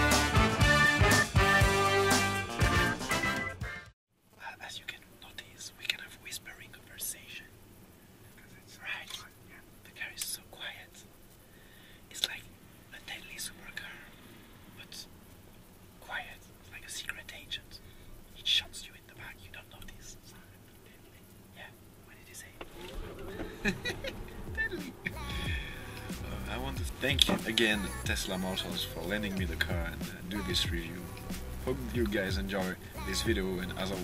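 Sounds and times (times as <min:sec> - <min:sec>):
background music: 0:00.0 - 0:03.9, 0:22.7 - 0:34.0.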